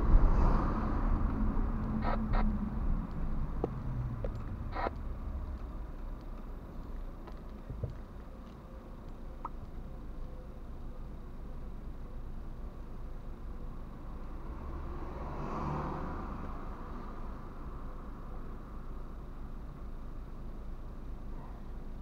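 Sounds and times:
vehicle passing: 0:00.0 - 0:06.0, 0:14.0 - 0:17.7
traffic and engine rumble: 0:00.0 - 0:22.0.

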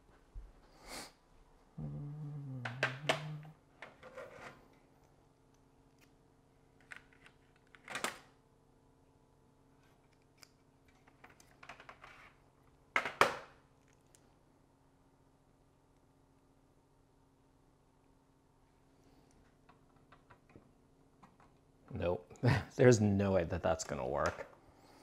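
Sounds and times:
low hum: 0:01.5 - 0:03.7.

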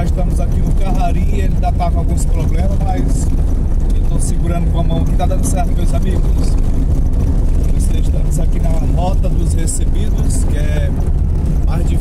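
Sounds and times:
vehicle rumbling on dirt road: 0:00.0 - 0:12.0.

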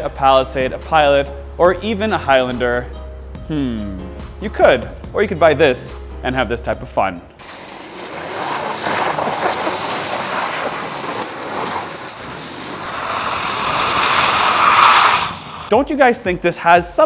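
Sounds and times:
tyres spinning in snow and slush: 0:07.4 - 0:15.7.

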